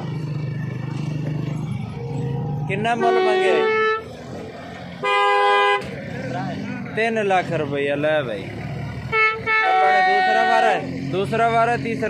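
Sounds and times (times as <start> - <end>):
vehicle horn blast: 3.0 - 4.1, 5.0 - 5.9, 9.1 - 10.8.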